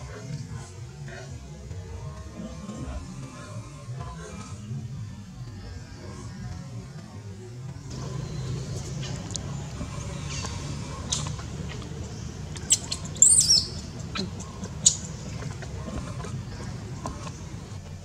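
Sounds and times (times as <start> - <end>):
steady low hum: 0.0 - 18.0
infant monkey squealing: 12.6 - 15.2.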